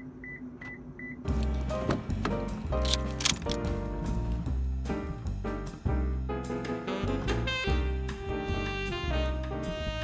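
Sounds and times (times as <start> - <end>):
music with heavy bass: 1.3 - 10.0.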